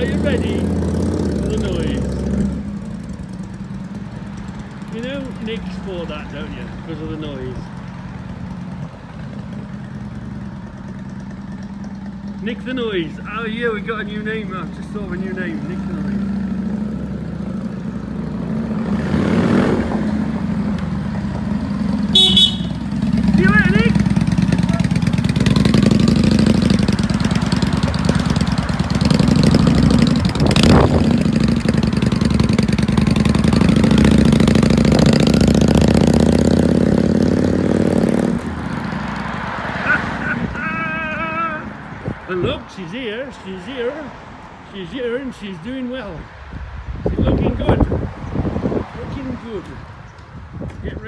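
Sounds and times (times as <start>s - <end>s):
motorcycle engine riding off: 0.0s - 42.5s
horn toot: 22.0s - 24.0s.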